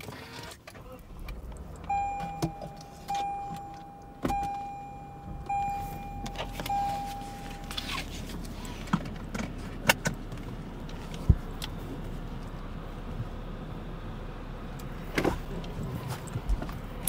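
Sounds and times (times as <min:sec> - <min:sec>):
electronic warning chime: 0:01.9 - 0:07.9.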